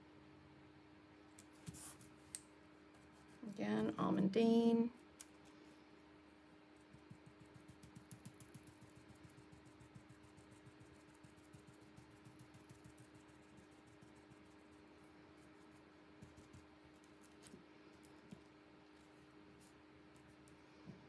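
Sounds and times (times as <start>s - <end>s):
steady low hum: 0.0s - 21.0s
stencil brush tapping: 6.9s - 14.7s, 15.4s - 17.5s.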